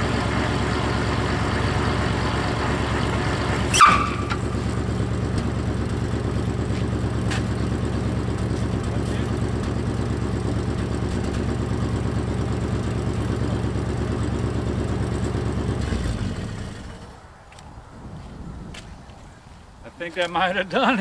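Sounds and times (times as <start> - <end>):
car engine running: 0.0 - 17.2.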